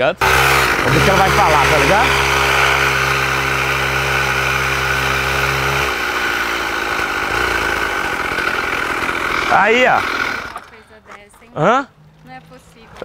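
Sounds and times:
mini-bike engine running: 0.2 - 11.0.

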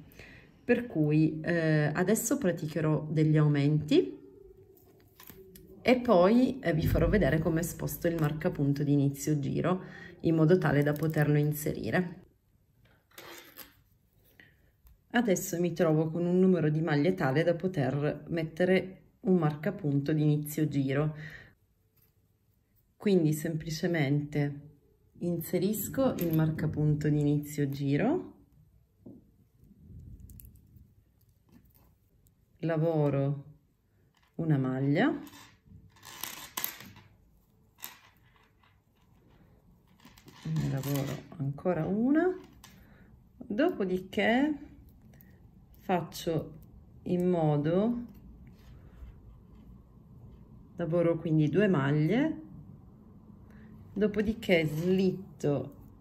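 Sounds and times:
knitting needle rustling: 21.7 - 23.1, 27.4 - 33.2, 33.9 - 50.6, 54.2 - 56.0
yarn and needles rustling: 29.4 - 33.4, 54.1 - 56.0.

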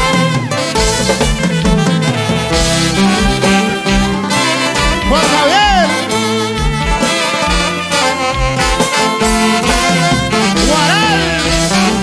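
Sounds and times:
live band with saxophones: 0.0 - 12.0.

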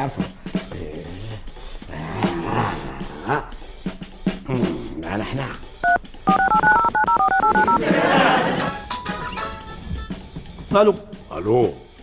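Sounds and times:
phone keypad beeps: 5.8 - 7.9.

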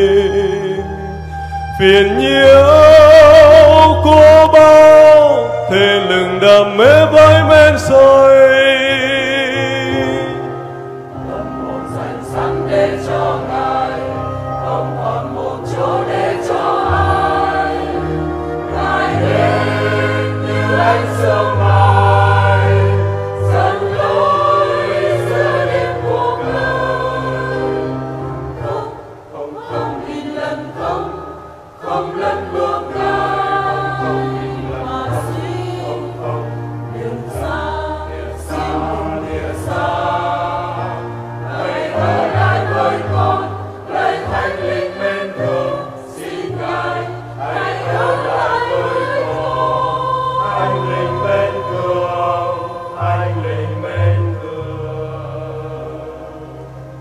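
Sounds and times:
choir singing a hymn: 0.0 - 57.0
instrumental accompaniment: 0.0 - 57.0.

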